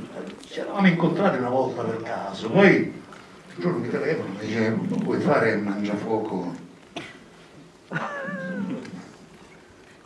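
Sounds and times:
man's falsetto cry: 0:08.0 - 0:09.1.

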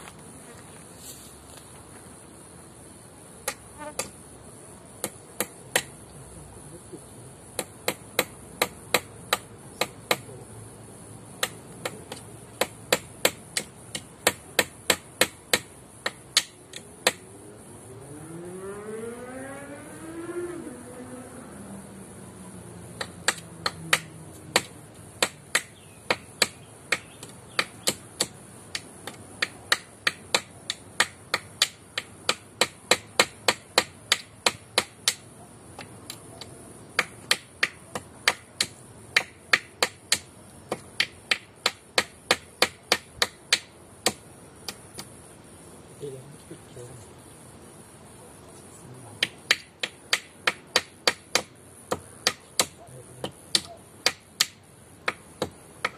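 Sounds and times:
hammer striking nail into wood: 0:07.6 - 0:10.3, 0:11.4 - 0:17.2, 0:23.0 - 0:35.2, 0:37.0 - 0:45.1, 0:49.2 - 0:55.9
engine rising in pitch: 0:17.4 - 0:22.8.

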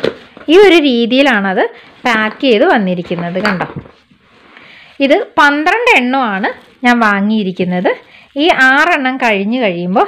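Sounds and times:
woman talking: 0:00.5 - 0:03.9, 0:05.0 - 0:10.0.

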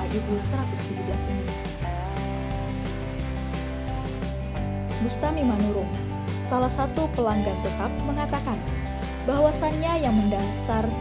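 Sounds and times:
background music with bass line: 0:00.0 - 0:11.0
oil sizzling in a wok: 0:00.0 - 0:11.0.

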